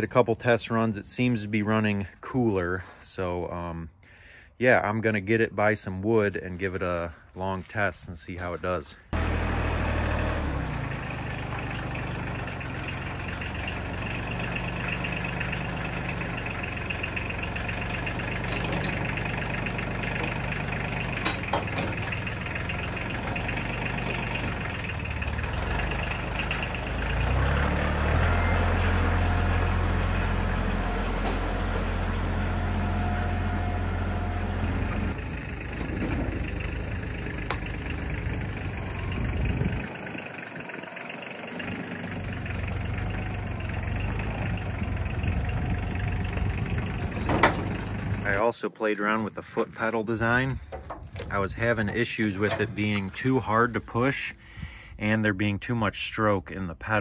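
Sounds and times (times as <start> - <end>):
log splitter engine running: 9.1 - 54.1.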